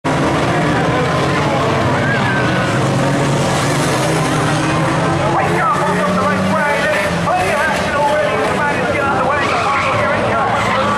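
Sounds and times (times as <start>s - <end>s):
racing car engines droning: 0.0s - 10.9s
spectators' voices: 0.1s - 10.9s.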